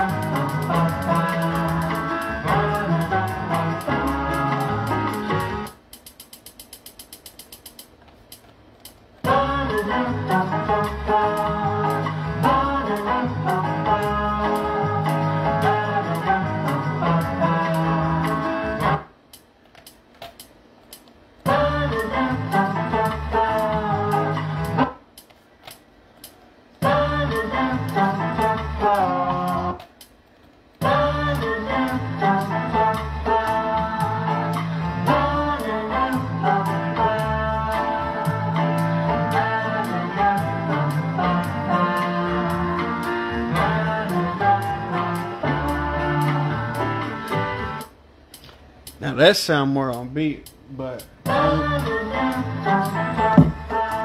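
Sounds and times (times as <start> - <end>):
latin song with guitar: 0.0 - 5.7, 9.2 - 19.1, 51.3 - 54.0.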